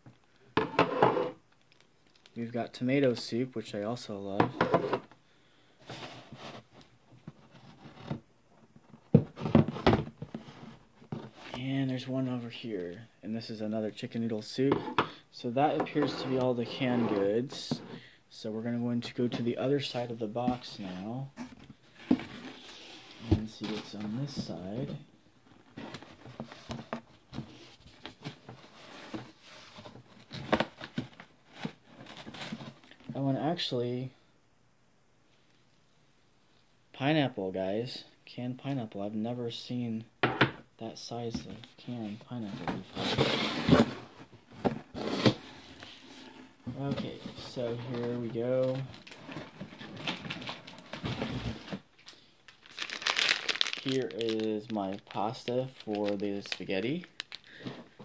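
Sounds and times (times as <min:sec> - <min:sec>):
packaging rustling and crinkling: 0:42.7 - 0:58.0
cellophane package crinkling: 0:52.0 - 0:57.6
groceries rummaged in cardboard box: 0:52.6 - 0:58.0.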